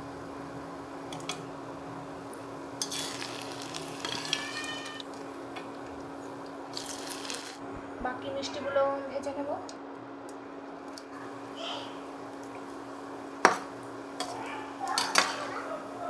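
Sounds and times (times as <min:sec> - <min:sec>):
oil sizzling: 0:00.0 - 0:07.7, 0:10.6 - 0:16.0
steady low hum: 0:00.0 - 0:16.0
spoon scraping a steel pan: 0:02.8 - 0:03.4, 0:04.0 - 0:05.0.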